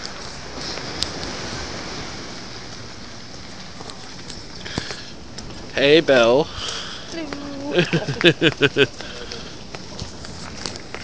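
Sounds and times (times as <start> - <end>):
person laughing: 7.7 - 9.3.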